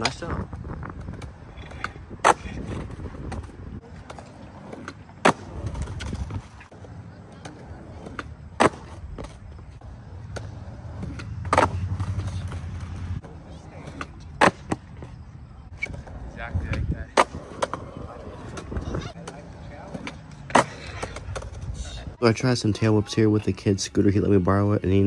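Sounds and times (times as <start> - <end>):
skateboard wheels rolling on concrete: 0.0 - 25.0
skateboard cracks: 1.0 - 9.6, 13.9 - 14.9, 15.7 - 21.6.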